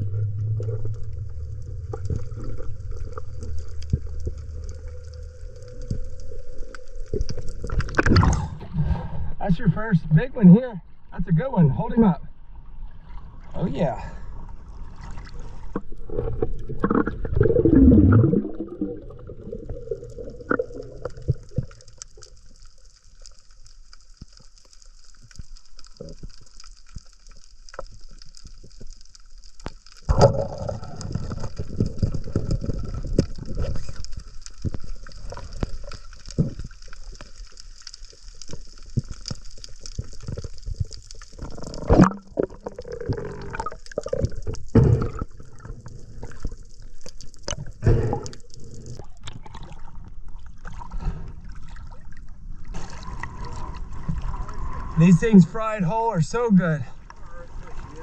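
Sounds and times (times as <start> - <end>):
muffled underwater churning: 0.0 - 58.0.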